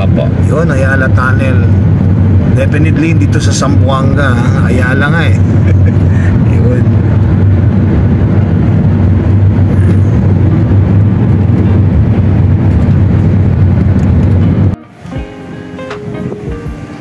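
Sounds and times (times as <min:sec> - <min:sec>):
car driving through tunnel: 0:00.0 - 0:14.8.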